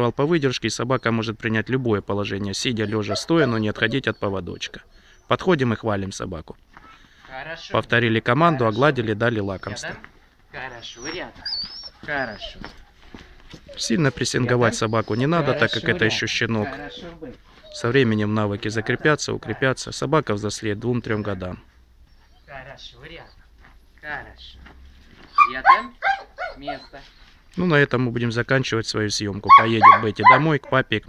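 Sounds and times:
dogs barking and yipping: 1.0s - 5.4s, 8.0s - 23.6s, 25.1s - 27.2s, 29.4s - 30.9s
loud calls: 2.6s - 5.4s, 10.6s - 20.0s, 25.2s - 27.2s, 29.4s - 30.8s
small bird chirping: 10.7s - 12.9s.

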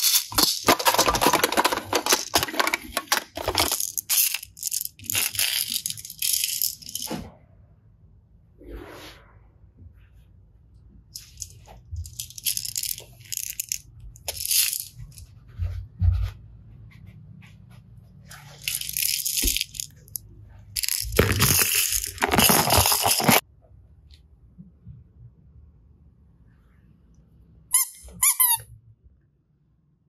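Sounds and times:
plastic toys rattling and crinkling: 0.0s - 7.2s, 11.2s - 15.3s, 18.3s - 23.4s.

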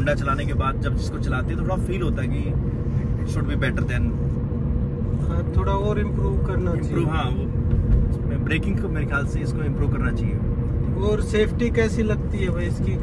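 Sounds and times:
men talking: 0.0s - 4.3s, 5.1s - 13.0s
road and engine rumble in car: 0.0s - 13.0s.

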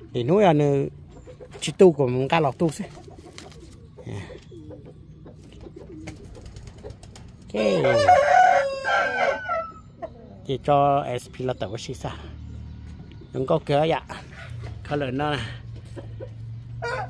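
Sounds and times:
rooster crowing: 7.6s - 9.9s, 16.8s - 17.0s.

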